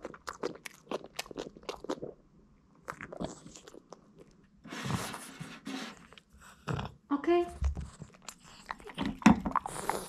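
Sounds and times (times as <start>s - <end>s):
dog crunching a treat: 0.0s - 2.1s.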